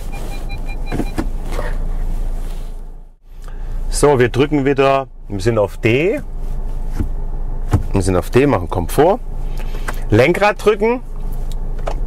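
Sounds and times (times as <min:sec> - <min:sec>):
car cabin hum: 0:00.0 - 0:12.0.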